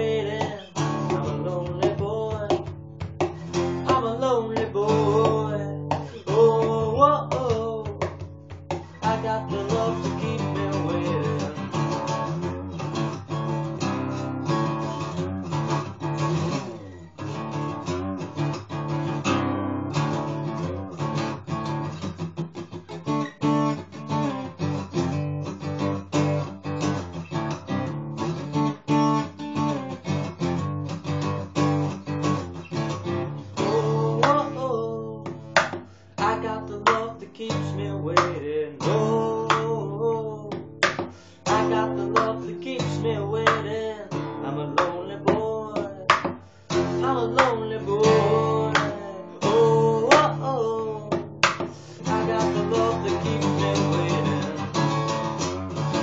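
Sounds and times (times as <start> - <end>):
man singing: 0.0 - 12.4, 33.4 - 55.2
acoustic guitar strumming: 0.0 - 56.0.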